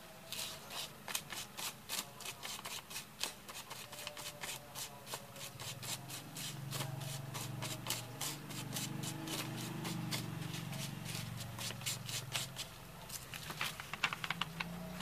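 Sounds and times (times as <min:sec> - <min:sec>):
paper rustling and scratching: 0:00.3 - 0:15.0.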